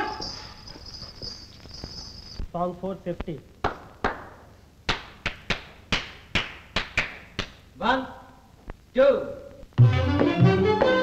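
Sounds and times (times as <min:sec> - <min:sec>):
hard-soled footsteps on bare floor: 0:00.0 - 0:02.6, 0:09.8 - 0:11.0.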